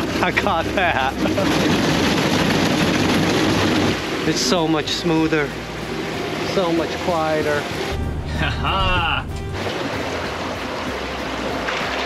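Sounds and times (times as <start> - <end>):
boat crackling through icy water: 0.0 - 12.0.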